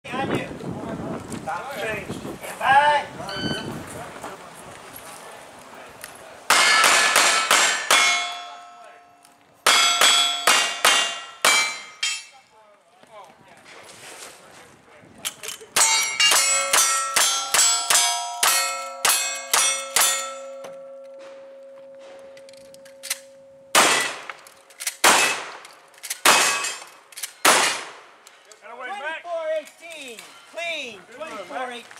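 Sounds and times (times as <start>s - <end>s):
steel plates clanging: 6.5s - 12.4s, 15.8s - 25.4s, 26.1s - 27.8s
shotgun blasts: 23.7s - 24.4s, 25.0s - 25.6s, 26.2s - 28.2s
rifle shots: 23.7s - 25.6s, 26.2s - 28.2s.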